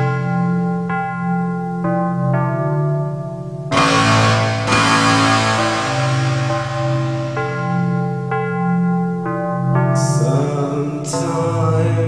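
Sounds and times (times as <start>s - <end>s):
sustained keyboard notes: 3.7s - 8.8s.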